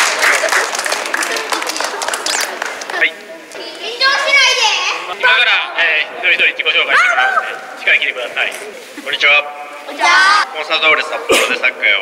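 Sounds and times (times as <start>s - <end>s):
children talking and calling out: 1.7s - 5.8s, 6.8s - 7.8s, 8.5s - 11.3s.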